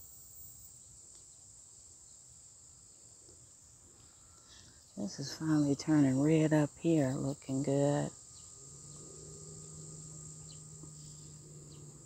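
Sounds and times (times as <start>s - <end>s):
insects trilling: 0.0s - 12.0s
faint low hum: 2.9s - 12.0s.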